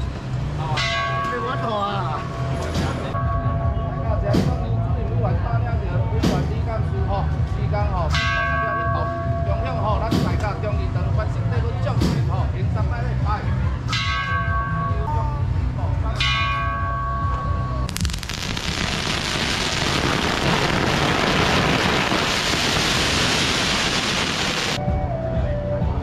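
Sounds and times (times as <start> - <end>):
music with bell-like tones: 0.6 - 5.8, 7.1 - 11.7, 13.1 - 17.9
firecrackers crackling: 17.9 - 24.8.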